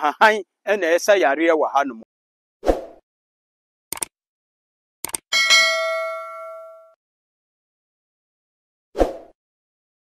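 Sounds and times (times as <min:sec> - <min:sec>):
notification bell ding: 0:05.4 - 0:07.0.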